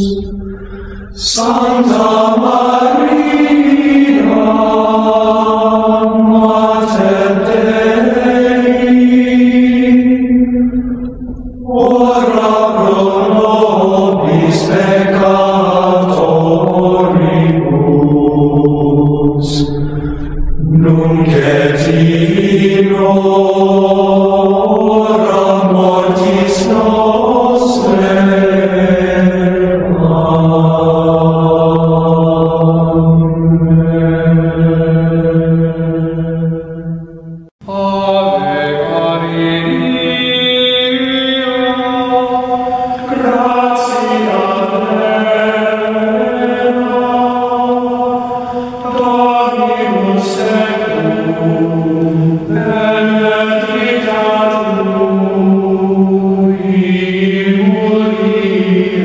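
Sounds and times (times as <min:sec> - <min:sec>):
voices singing chant: 0:00.0 - 0:59.0.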